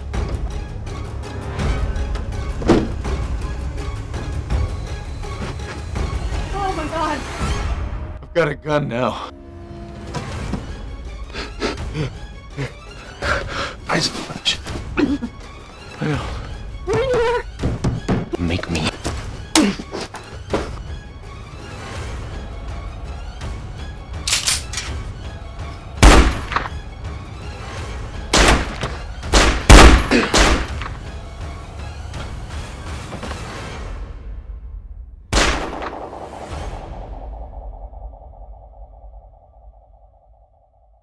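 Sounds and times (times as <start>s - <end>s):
low rumble: 35.8s - 41.0s.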